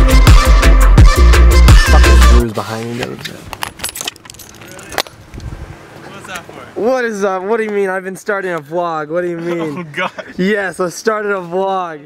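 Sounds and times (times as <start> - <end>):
outdoor background noise: 2.4 - 12.0.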